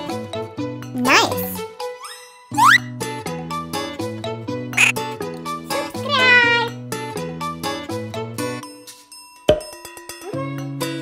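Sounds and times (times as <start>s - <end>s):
upbeat children's music: 0.0s - 11.0s
kitten meowing: 6.0s - 6.7s.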